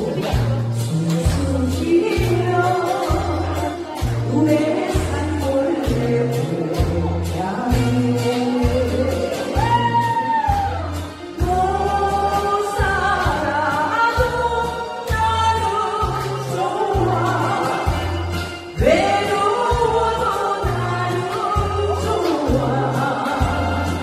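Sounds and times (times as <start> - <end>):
karaoke backing track: 0.0 - 24.0
woman singing into microphone: 0.0 - 24.0.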